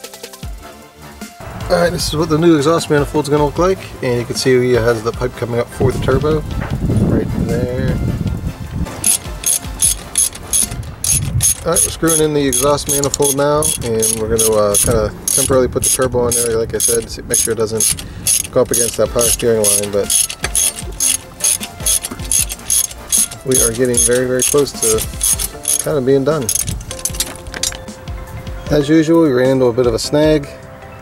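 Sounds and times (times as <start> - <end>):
ratchet wrench clicking: 9.0 - 27.8.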